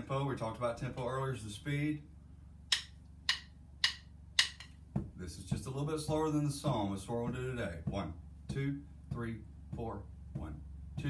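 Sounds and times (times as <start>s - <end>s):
drumsticks clicking together: 2.7s - 4.8s.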